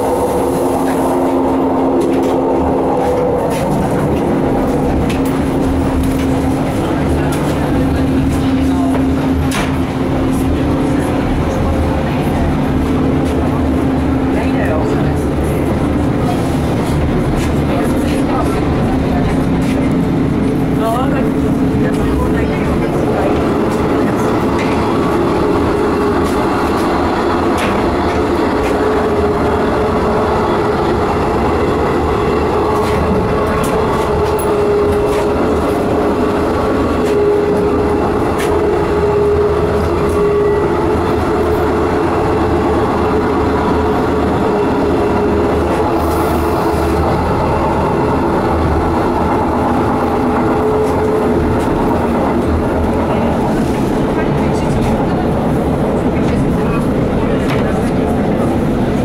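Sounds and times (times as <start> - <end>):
diesel railcar engine running: 0.0 - 59.0
train wheels on rails: 0.0 - 59.0.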